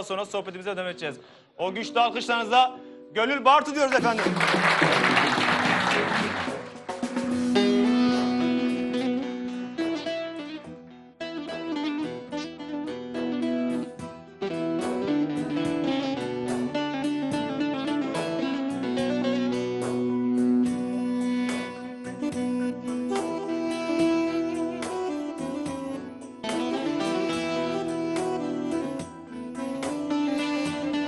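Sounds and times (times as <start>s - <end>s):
band accompaniment: 3.8s - 10.8s, 11.5s - 31.0s
applause: 3.9s - 7.3s.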